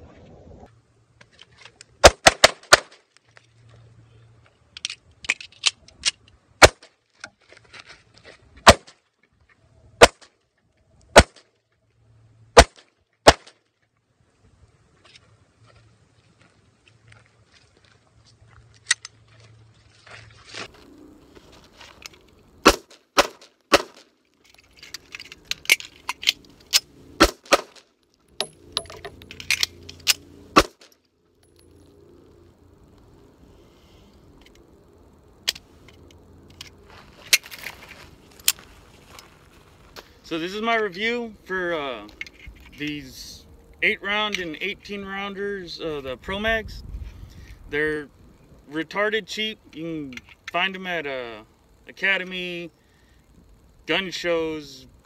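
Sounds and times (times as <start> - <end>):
pistol shot: 2.0 - 3.0, 8.6 - 8.9, 11.1 - 11.4, 12.6 - 13.6, 22.6 - 24.0, 27.2 - 27.8.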